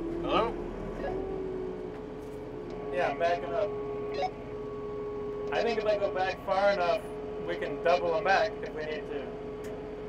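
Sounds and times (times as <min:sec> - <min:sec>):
tractor diesel engine running: 0:00.0 - 0:10.0.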